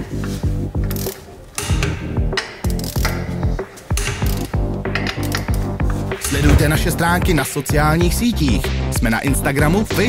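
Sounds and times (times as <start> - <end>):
background music: 0.0 - 10.0
torque wrench ratchet clicking: 0.8 - 6.4.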